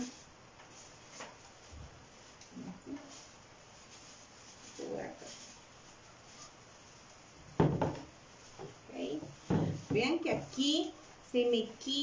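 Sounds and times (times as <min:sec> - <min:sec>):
dull knocks on wooden table: 0:07.6 - 0:08.1, 0:09.5 - 0:10.0.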